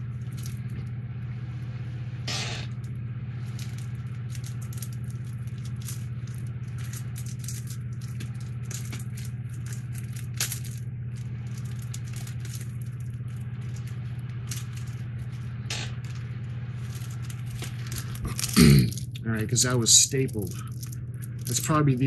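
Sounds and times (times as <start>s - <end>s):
plastic bag crinkling: 0.0s - 0.9s, 2.7s - 22.0s
steady low hum: 0.0s - 22.0s.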